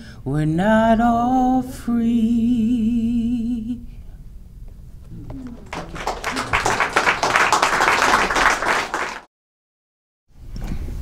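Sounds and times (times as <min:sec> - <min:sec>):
audience applause: 0:05.1 - 0:09.3.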